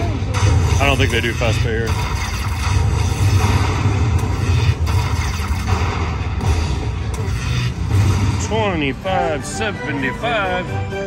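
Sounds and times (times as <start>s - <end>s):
low rumble: 0.0s - 9.0s
slot machine win music: 0.1s - 11.0s.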